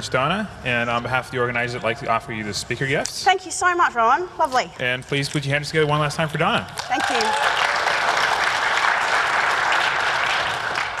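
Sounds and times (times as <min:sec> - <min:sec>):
audience applauding: 0:06.8 - 0:11.0.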